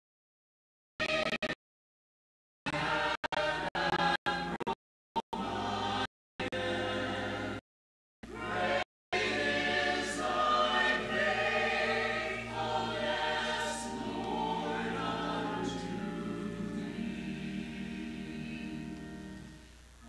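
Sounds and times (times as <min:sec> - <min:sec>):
choir singing in parts: 0:02.7 - 0:04.8, 0:05.4 - 0:07.6, 0:08.2 - 0:19.6.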